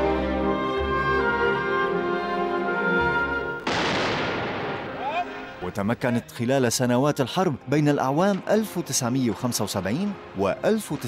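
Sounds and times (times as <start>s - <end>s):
explosion blast: 3.6s - 5.4s.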